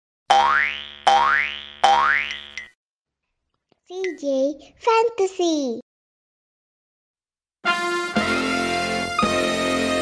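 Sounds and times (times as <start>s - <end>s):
cartoon boing effects: 0.3s - 2.7s.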